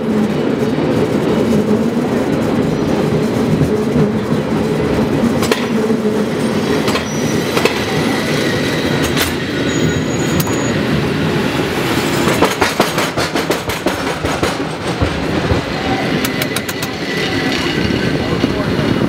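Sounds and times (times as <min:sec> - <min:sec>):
cable car clacking on rails: 0:00.0 - 0:19.0
cable car rumbling and rattling: 0:00.0 - 0:19.0.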